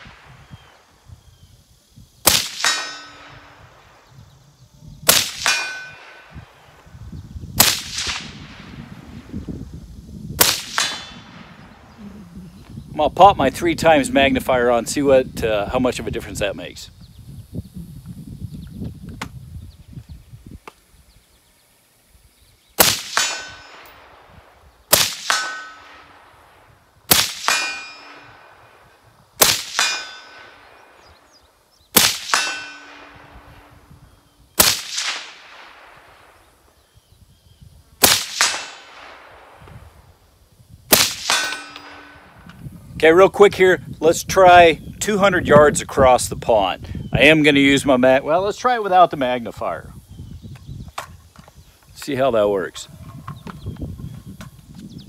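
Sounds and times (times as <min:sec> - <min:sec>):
wind rumble on microphone: 0:00.0 - 0:31.4, 0:32.5 - 0:55.0
rifle shots: 0:02.2 - 0:04.0, 0:05.0 - 0:06.7, 0:07.6 - 0:08.8, 0:10.4 - 0:11.7, 0:22.8 - 0:26.5, 0:27.1 - 0:31.0, 0:32.0 - 0:33.7, 0:34.6 - 0:36.4, 0:38.0 - 0:39.7, 0:40.9 - 0:42.4
bullet clanging on steel target: 0:02.6 - 0:03.4, 0:05.4 - 0:06.2, 0:23.2 - 0:24.0, 0:25.3 - 0:25.9, 0:27.5 - 0:28.3, 0:29.7 - 0:30.6, 0:32.3 - 0:33.2, 0:41.2 - 0:42.3.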